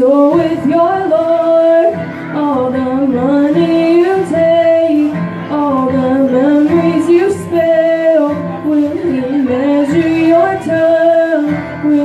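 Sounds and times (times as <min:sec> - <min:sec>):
acoustic guitar: 0:00.0 - 0:12.0
woman singing long notes: 0:00.0 - 0:12.0.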